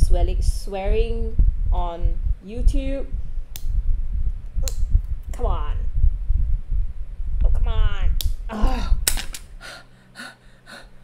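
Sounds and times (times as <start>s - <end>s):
sharp click: 3.5s - 3.7s
woman gasping and exhaling: 8.5s - 11.0s.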